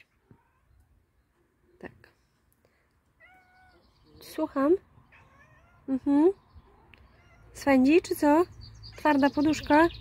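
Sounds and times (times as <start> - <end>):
cat meowing: 3.2 - 4.0, 5.1 - 5.9, 6.8 - 7.6.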